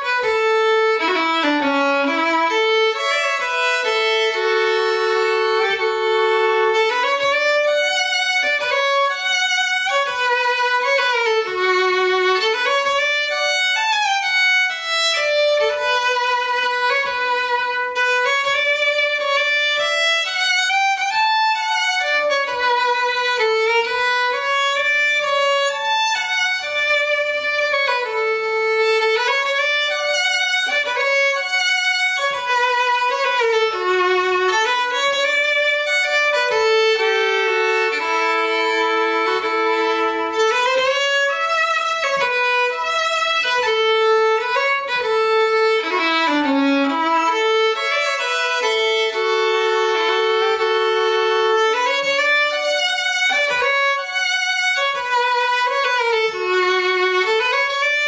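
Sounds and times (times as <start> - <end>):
solo fiddle waltz: 0.0 - 58.0.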